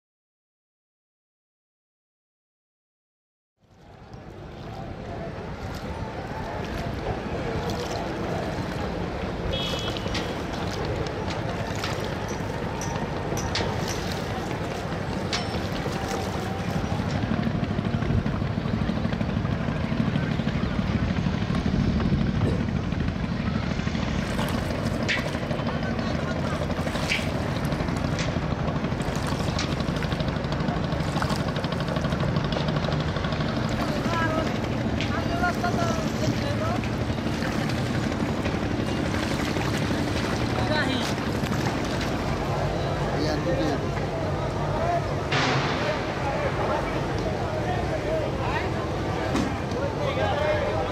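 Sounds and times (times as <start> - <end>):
low engine drone: 3.6 - 50.9
distant voices: 3.7 - 50.9.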